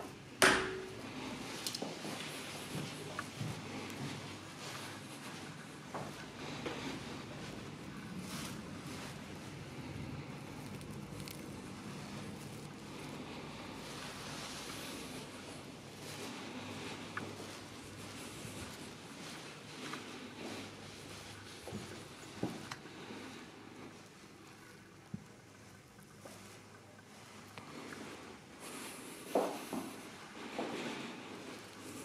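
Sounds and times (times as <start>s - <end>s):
faint room background noise: 0.0s - 32.0s.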